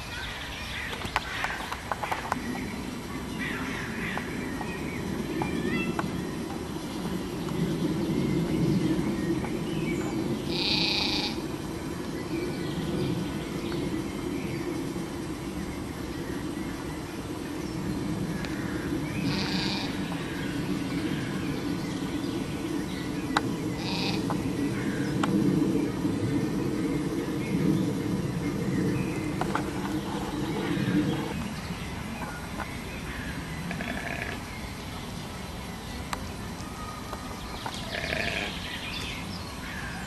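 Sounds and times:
low rumble: 0:02.2 - 0:34.8
high-pitched animal calls: 0:10.5 - 0:11.4, 0:19.2 - 0:20.0, 0:23.8 - 0:24.3.

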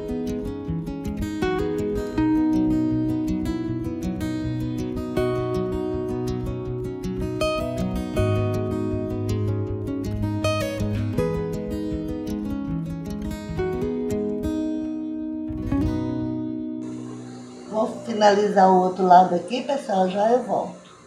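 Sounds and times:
acoustic guitar strummed and plucked: 0:00.0 - 0:18.0.

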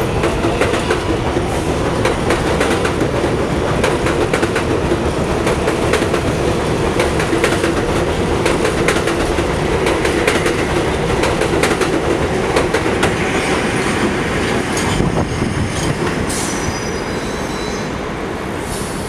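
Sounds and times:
train rumble: 0:00.0 - 0:19.0
train wheels clacking over joints: 0:00.1 - 0:15.0
high wheel squeal: 0:16.3 - 0:18.0.

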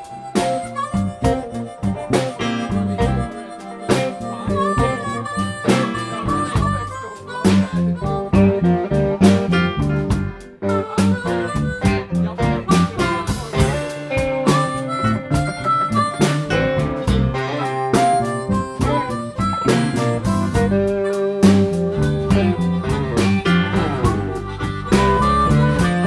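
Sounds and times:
harmonica solo: 0:00.0 - 0:26.0
live blues band playing: 0:00.0 - 0:26.0.

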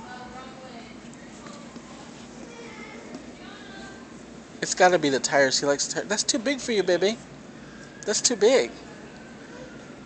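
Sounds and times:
faint distant voices: 0:00.0 - 0:10.0
store background hubbub: 0:00.0 - 0:10.0.

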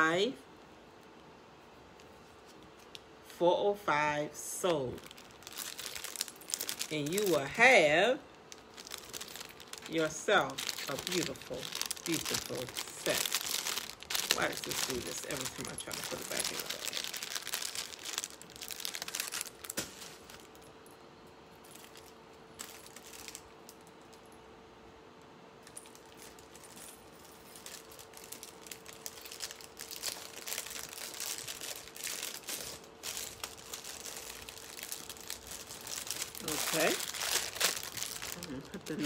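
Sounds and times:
plastic bag crinkling: 0:04.7 - 0:20.8, 0:21.6 - 0:24.2, 0:25.6 - 0:39.0.

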